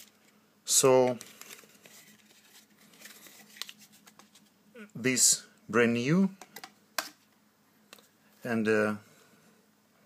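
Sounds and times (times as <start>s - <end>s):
plastic blister pack crinkling: 1.1s - 4.5s.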